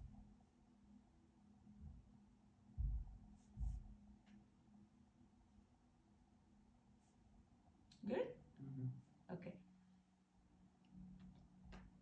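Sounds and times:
dull low thumps: 0:02.8 - 0:04.0.

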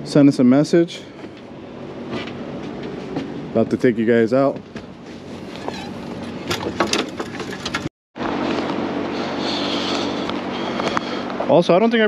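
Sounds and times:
steady low hum with held tones: 0:00.0 - 0:12.0.

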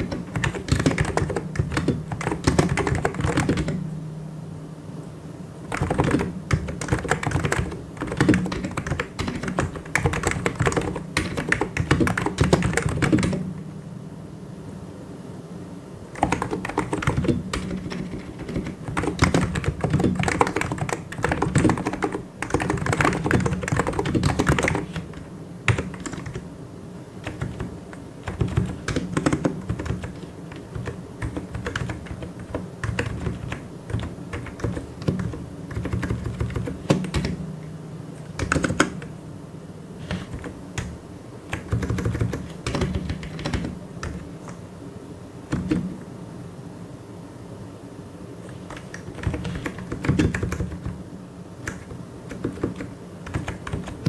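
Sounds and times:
fast keyboard typing: 0:00.0 - 0:03.8, 0:05.7 - 0:13.5, 0:16.1 - 0:26.5, 0:27.2 - 0:37.4, 0:38.4 - 0:39.1, 0:40.0 - 0:44.3, 0:45.5 - 0:45.9, 0:48.5 - 0:51.0, 0:51.6 - 0:54.0.

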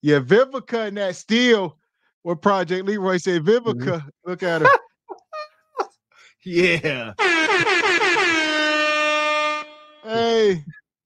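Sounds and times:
air horn blasts: 0:07.2 - 0:10.3.

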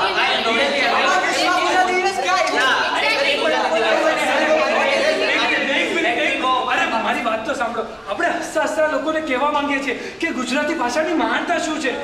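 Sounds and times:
overlapping voices chattering: 0:00.0 - 0:08.5.

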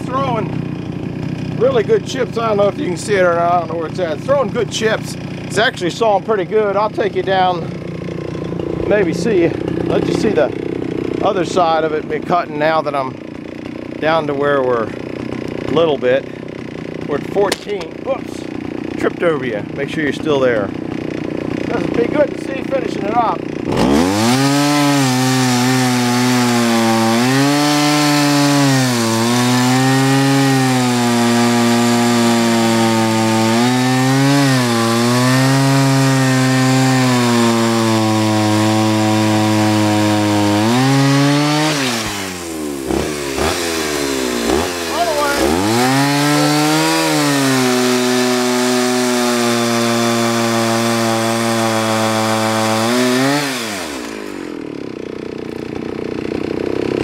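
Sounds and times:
chainsaw cutting log: 0:00.0 - 0:57.0.

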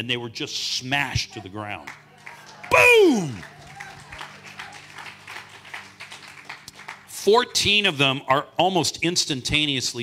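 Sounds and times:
audience clapping: 0:01.8 - 0:07.7.

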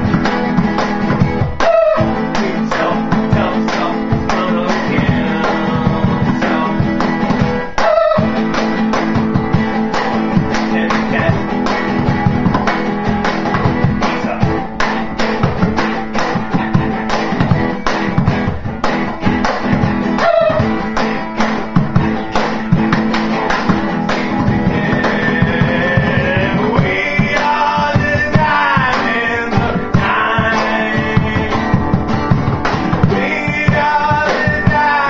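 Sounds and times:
acoustic guitar strumming: 0:00.0 - 0:35.0
cajon slapped by hand: 0:00.0 - 0:35.0.

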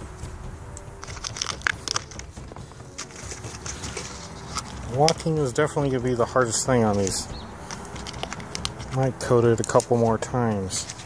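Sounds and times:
fingers picking grit from boot sole: 0:01.5 - 0:05.3.

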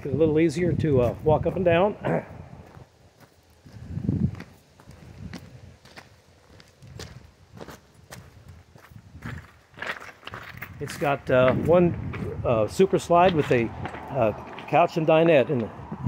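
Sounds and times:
footsteps on gravel: 0:01.0 - 0:15.8
person clearing throat: 0:02.0 - 0:02.4
low rumble: 0:11.3 - 0:14.7.

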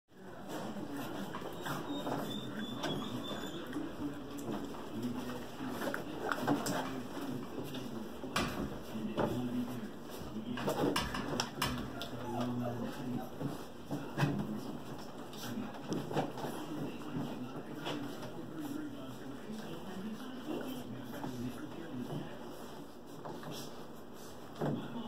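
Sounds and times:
puppy paws scuffling: 0:00.2 - 0:25.0
low wavering puppy vocalizing: 0:01.2 - 0:04.4, 0:11.9 - 0:13.4.

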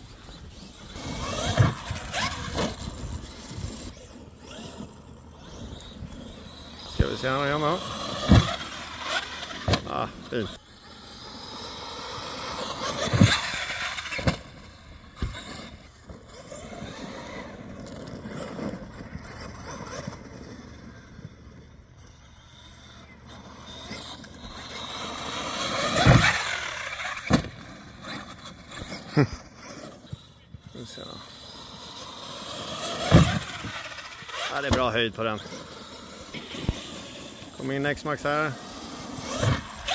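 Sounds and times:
rc truck motors whining: 0:00.0 - 0:39.9
trucks thumping on ground: 0:08.0 - 0:09.9, 0:24.5 - 0:28.2, 0:32.8 - 0:34.8.

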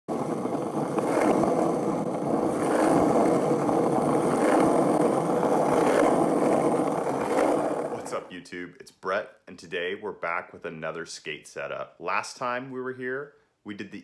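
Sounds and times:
skateboard wheels rolling on asphalt: 0:00.1 - 0:08.4.

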